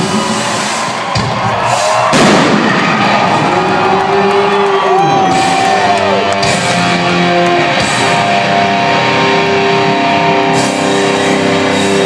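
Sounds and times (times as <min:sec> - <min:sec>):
crowd noise: 0:00.0 - 0:12.0
loud crash: 0:01.8 - 0:03.5.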